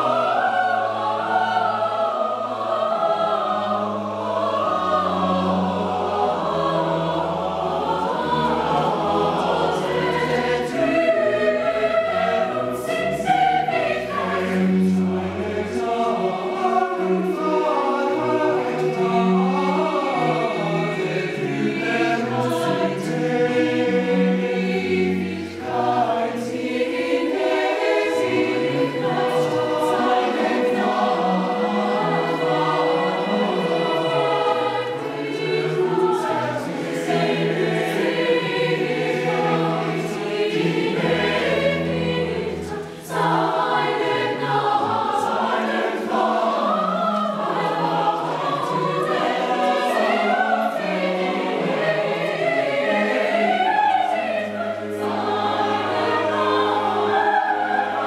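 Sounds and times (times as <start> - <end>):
cello: 0.0 - 58.0
choir singing in parts: 0.0 - 58.0.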